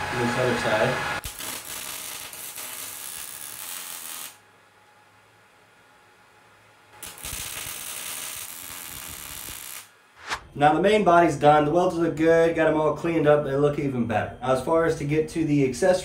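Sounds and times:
welding arc crackling: 1.2s - 4.4s, 7.0s - 9.9s.

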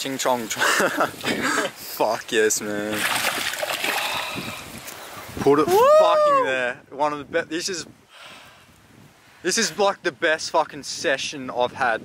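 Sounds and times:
fish splashing in water: 2.9s - 4.6s.

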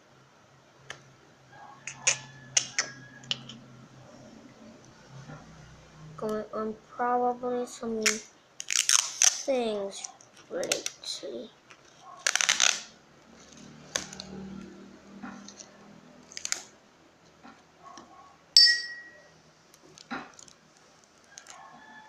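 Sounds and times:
crinkling rustle: 8.0s - 14.4s, 19.7s - 21.8s.

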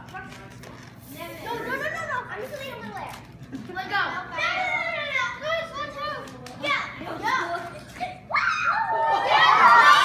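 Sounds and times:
young children talking excitedly: 1.0s - 10.0s.

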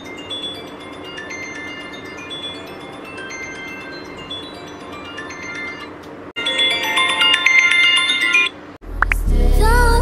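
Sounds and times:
phone alarm chiming melody: 0.0s - 8.6s.

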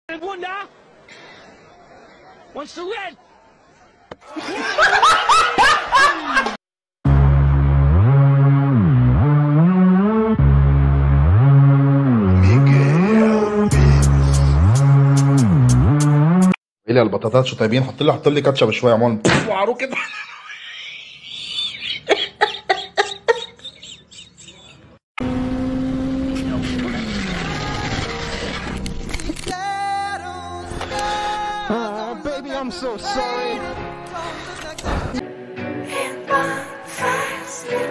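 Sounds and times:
person laughing loudly: 19.9s - 24.9s
motorcycle engine revving: 25.2s - 28.9s.

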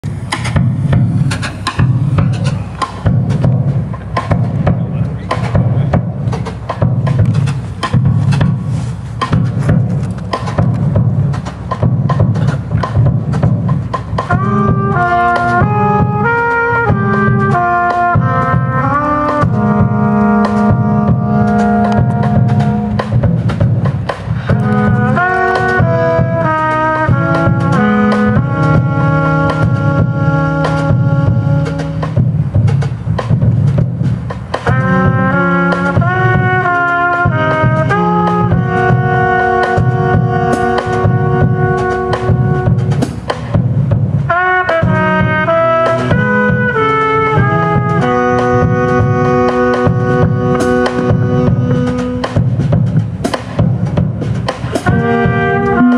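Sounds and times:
drum kit: 0.0s - 55.9s
trumpet: 13.4s - 32.9s, 34.6s - 55.9s
tenor saxophone: 14.3s - 23.2s, 24.4s - 32.2s, 34.7s - 43.0s, 44.3s - 52.7s, 54.8s - 55.9s
electric bass: 18.4s - 23.5s, 24.3s - 26.5s.

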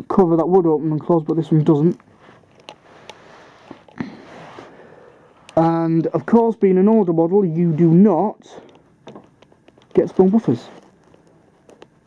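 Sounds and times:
plastic model handling rustle: 9.4s - 12.0s.

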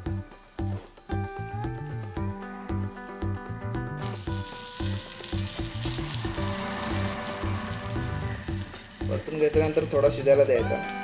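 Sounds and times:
rhythmic background music: 0.0s - 11.0s
batter sizzling on pan: 4.0s - 11.0s.

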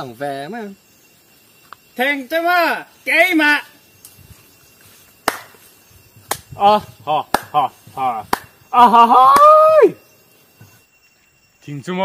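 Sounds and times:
finger snaps: 5.2s - 5.6s.

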